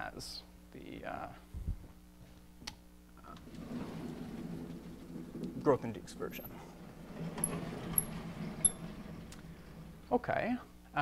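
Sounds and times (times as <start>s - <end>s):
chalkboard panels sliding: 3.3s - 10.2s.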